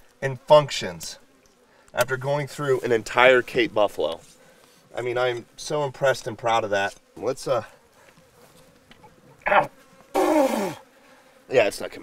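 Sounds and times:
flies buzzing faintly: 0.0s - 12.0s.

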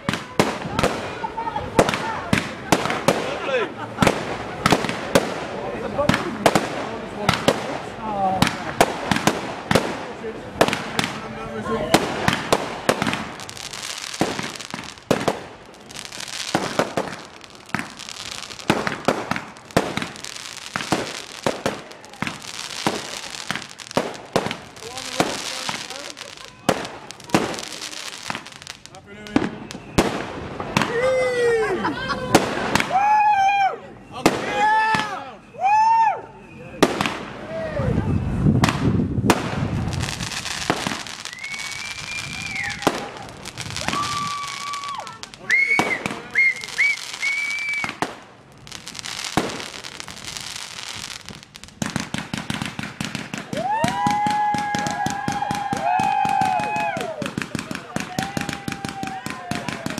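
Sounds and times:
whistling fireworks: 0.0s - 31.5s, 32.2s - 59.9s
fireworks bangs and crackling: 0.0s - 33.2s, 34.0s - 35.5s, 36.7s - 59.9s
steady high whistle: 35.2s - 36.8s, 41.3s - 42.8s, 45.5s - 48.0s.

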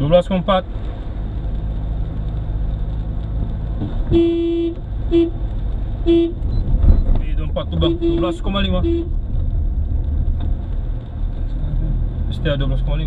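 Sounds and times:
car engine and tyres rumbling: 0.0s - 13.0s
car horn blasts: 4.1s - 5.4s, 6.0s - 6.4s, 7.8s - 9.1s.

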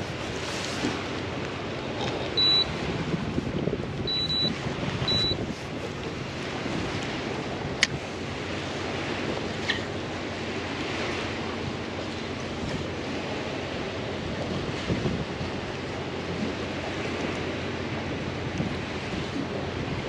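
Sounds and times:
wind noise: 0.0s - 9.9s, 14.2s - 20.0s
remote control beeping: 2.4s - 2.7s, 4.1s - 4.5s, 5.1s - 5.4s.

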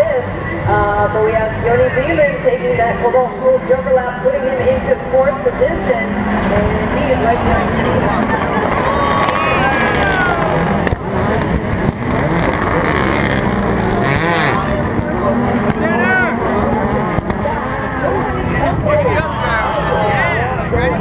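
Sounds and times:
race cars revving past: 0.0s - 21.0s.

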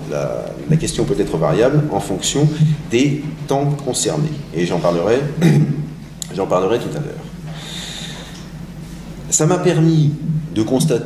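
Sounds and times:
steady low hum: 0.0s - 11.0s
man inhaling through nose: 7.5s - 9.1s.

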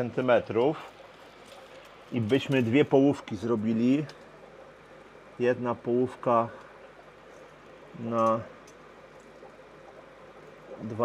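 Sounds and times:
water trickling and bubbling: 0.0s - 11.0s.

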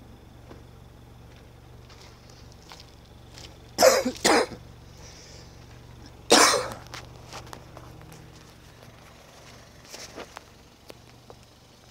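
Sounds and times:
person coughing: 3.8s - 4.6s, 6.3s - 6.8s.

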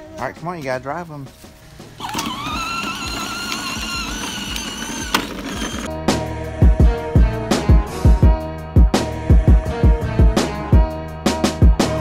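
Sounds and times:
electric motor whining: 2.0s - 5.9s.

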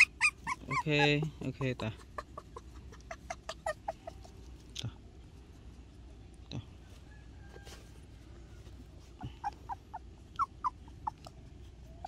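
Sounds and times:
puppy squeaking high peeps: 0.0s - 4.4s, 9.2s - 12.0s.

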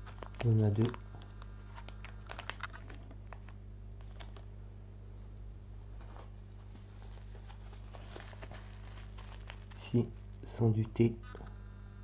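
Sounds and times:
foil sachets crinkling: 0.0s - 4.5s, 6.0s - 10.6s.

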